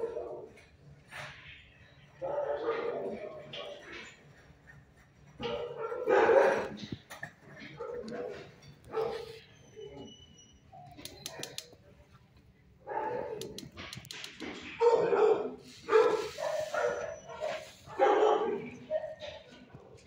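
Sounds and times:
dogs barking: 0:00.0 - 0:00.6, 0:02.2 - 0:10.1, 0:12.8 - 0:20.0
sharp clicks: 0:11.0 - 0:11.8, 0:13.4 - 0:14.4.

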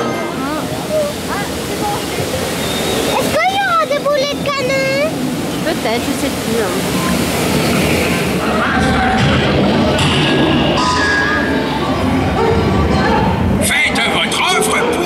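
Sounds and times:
water rushing in a flume: 0:00.0 - 0:15.0.

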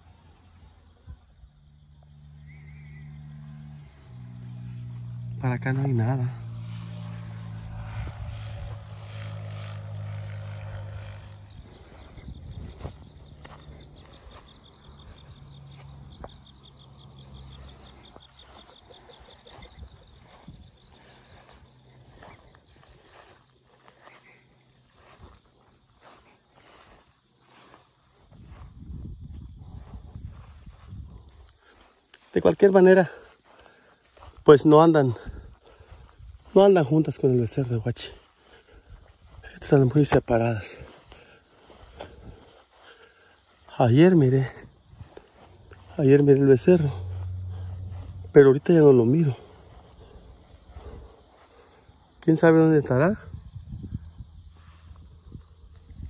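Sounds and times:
engine hum: 0:00.0 - 0:56.0
footsteps through dry grass: 0:00.0 - 0:56.0
insects chirping: 0:00.0 - 0:56.0
cattle lowing: 0:46.9 - 0:48.3, 0:49.4 - 0:51.9.

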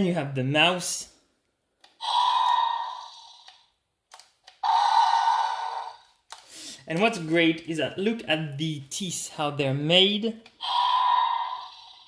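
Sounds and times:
toy electronic roar: 0:02.0 - 0:03.7, 0:04.6 - 0:06.1, 0:10.6 - 0:12.0.

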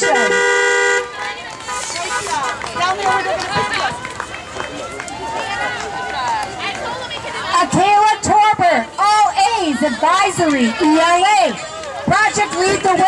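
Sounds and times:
car horn two-pitch tone: 0:00.0 - 0:01.1
people's voices: 0:00.0 - 0:13.0.

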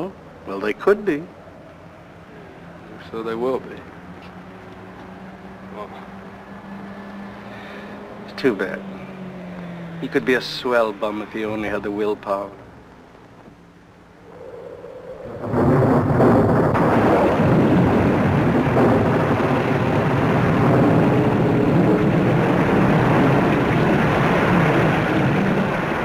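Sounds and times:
heavy rain downpour: 0:15.4 - 0:26.0.

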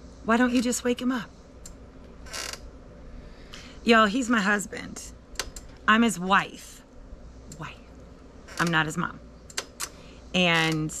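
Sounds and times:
chair creaking: 0:02.2 - 0:02.7, 0:08.4 - 0:08.9.

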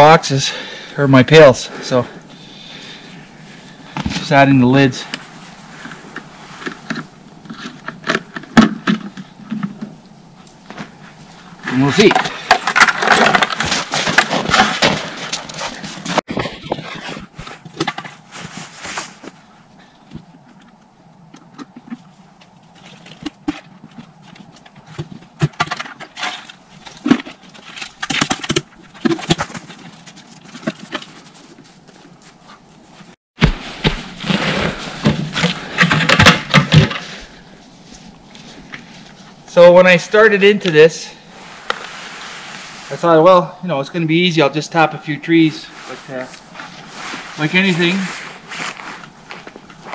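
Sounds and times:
plastic pails knocking and rattling: 0:05.8 - 0:10.0, 0:11.6 - 0:18.3, 0:22.8 - 0:31.4, 0:33.4 - 0:37.5
footsteps crunching through snow: 0:13.5 - 0:19.6, 0:29.0 - 0:35.8, 0:41.2 - 0:43.2, 0:45.3 - 0:49.9.

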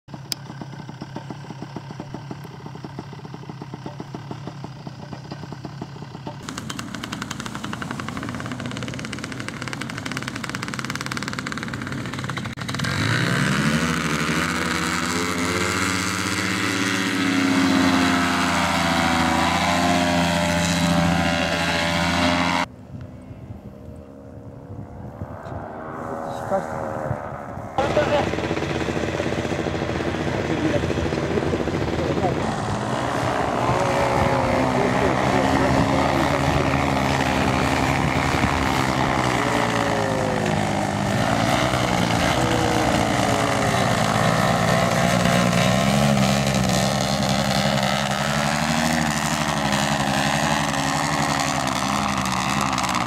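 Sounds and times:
paramotor engine and propeller: 0:00.1 - 0:53.0.

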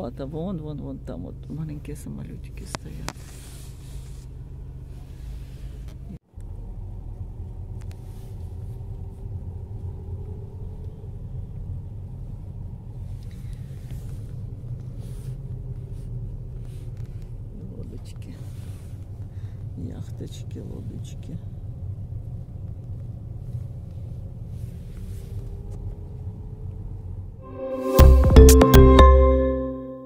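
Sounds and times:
road noise inside car: 0:00.0 - 0:27.5
car engine rumble: 0:00.0 - 0:29.3.

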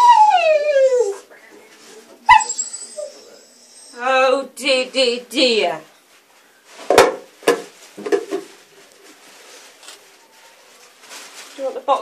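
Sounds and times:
bowl knocking on floor: 0:06.8 - 0:08.5.

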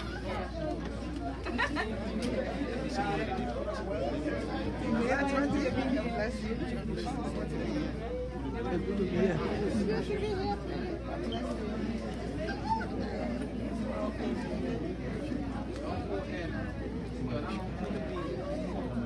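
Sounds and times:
overlapping conversational chatter: 0:00.0 - 0:19.0.

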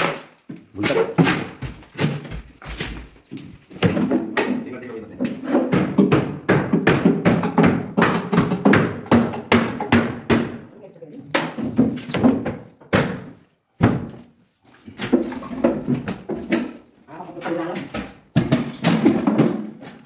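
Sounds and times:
cabinet panels knocking and banging: 0:00.0 - 0:02.8, 0:03.7 - 0:10.7, 0:11.3 - 0:14.2, 0:15.0 - 0:16.9, 0:17.5 - 0:20.0.

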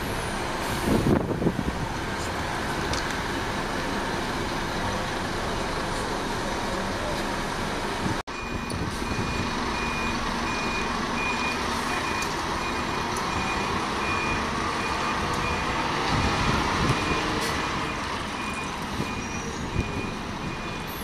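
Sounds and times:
diesel bus engine running: 0:00.0 - 0:21.0
reversing alarm beeping: 0:08.3 - 0:21.0.

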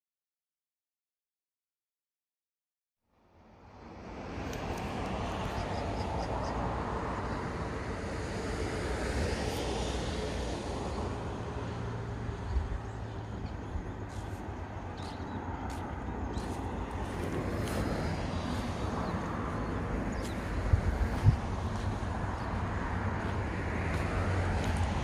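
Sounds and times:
road traffic rushing: 0:03.2 - 0:25.0.

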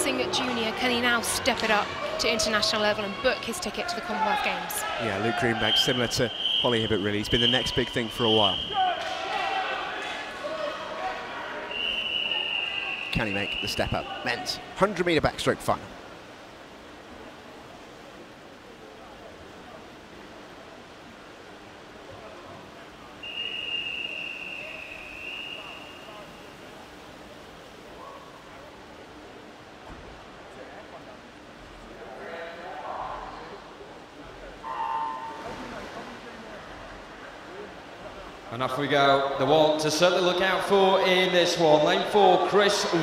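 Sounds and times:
echoing pool hall hum: 0:00.0 - 0:43.0
long whistle blow: 0:05.7 - 0:08.9, 0:11.7 - 0:13.9, 0:23.2 - 0:26.4, 0:34.6 - 0:35.5.

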